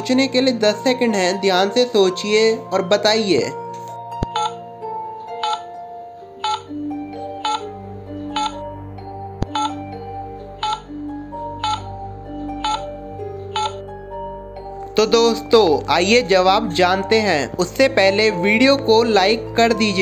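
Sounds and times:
background music: 0.0s - 20.0s
countdown ticking: 4.2s - 4.6s, 5.3s - 5.8s, 6.4s - 8.7s, 9.4s - 14.0s.

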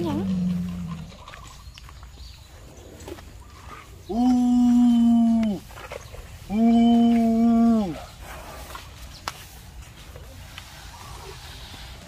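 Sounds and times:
elephant calf calling: 3.4s - 8.2s.

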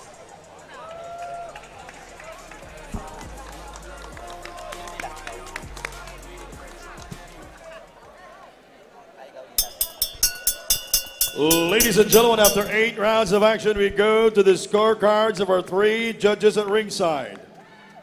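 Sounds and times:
music with sharp quick beat: 9.6s - 12.8s.

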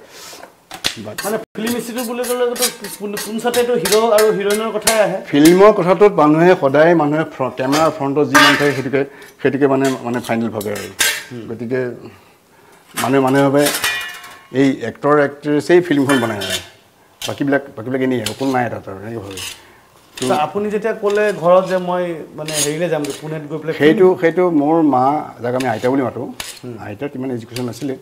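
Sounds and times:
metal utensils and pots clattering: 0.7s - 5.8s, 7.6s - 11.5s, 12.8s - 14.8s, 15.8s - 23.5s, 25.4s - 28.0s
man talking: 0.9s - 12.2s, 13.0s - 13.8s, 14.5s - 19.5s, 20.2s - 28.0s.

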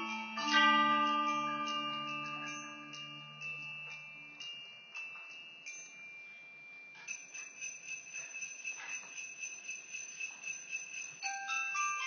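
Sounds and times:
bell-like mallet percussion: 0.0s - 12.0s.

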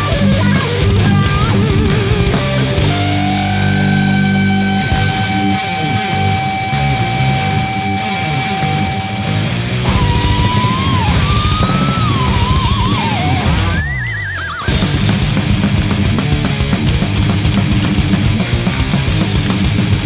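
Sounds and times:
thrash metal band playing: 0.0s - 14.1s, 14.7s - 20.0s
electric guitar lead with vibrato: 0.0s - 20.0s.

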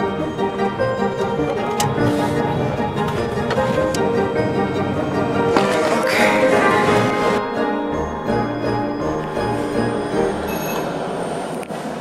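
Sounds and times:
wooden door scraping open: 1.5s - 7.4s.

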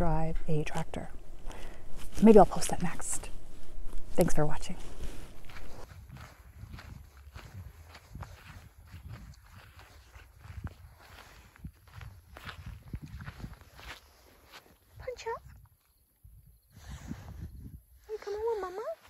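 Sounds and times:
low rumble: 0.0s - 8.3s
footsteps on dry grass: 0.8s - 15.2s.

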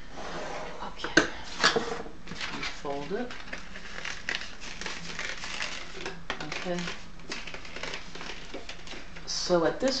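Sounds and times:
paper rustling and crinkling: 2.3s - 9.3s.

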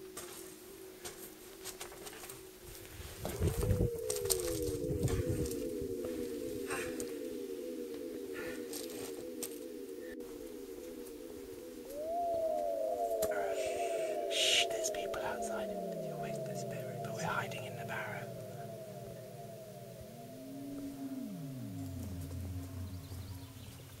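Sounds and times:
lower falling tones: 0.0s - 24.0s
synthesized falling tones: 2.7s - 24.0s.

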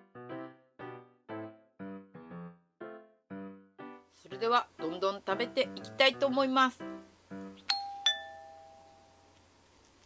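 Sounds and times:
doorbell chime: 7.7s - 9.3s.

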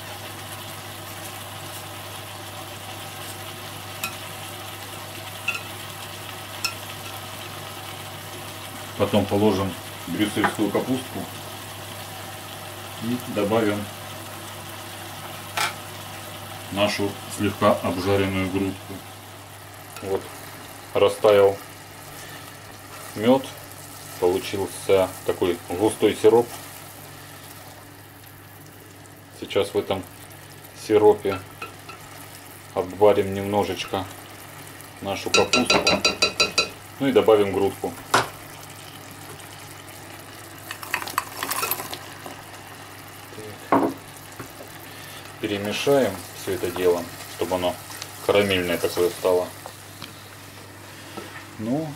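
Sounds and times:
honey bubbling and sizzling: 0.0s - 51.9s
sprouts clattering into pot: 40.6s - 42.3s.

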